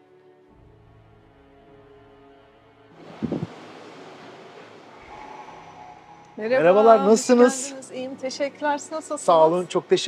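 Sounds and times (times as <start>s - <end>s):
soft background music: 0.0s - 10.0s
steady room noise hiss: 0.6s - 10.0s.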